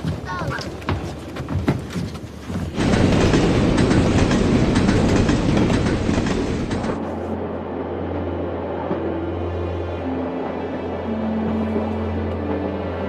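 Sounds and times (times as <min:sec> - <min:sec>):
train wheels rattling on rails: 0:00.0 - 0:07.2.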